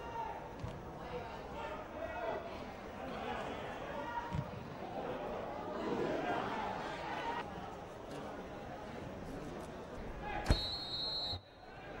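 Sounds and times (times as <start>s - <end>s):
high steady whistle-like tone: 10.5s - 11.7s.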